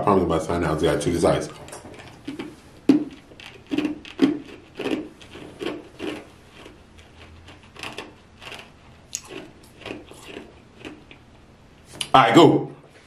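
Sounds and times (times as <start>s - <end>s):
ice cubes crunched in mouth: 2.0s - 11.2s.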